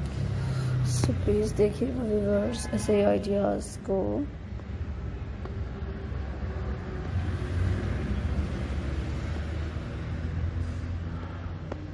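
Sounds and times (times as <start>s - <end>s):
steady low rumble: 0.0s - 11.9s.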